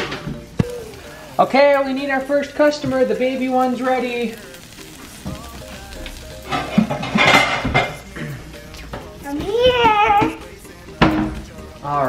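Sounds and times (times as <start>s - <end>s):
meat patty sizzling in a pan: 0.0s - 12.0s.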